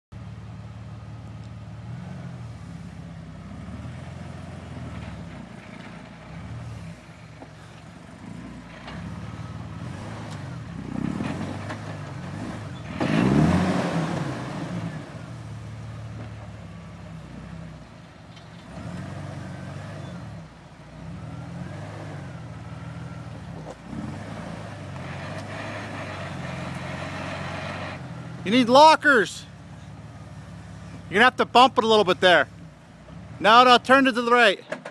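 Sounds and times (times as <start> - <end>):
off-road engine running at low revs: 0.1 - 34.9.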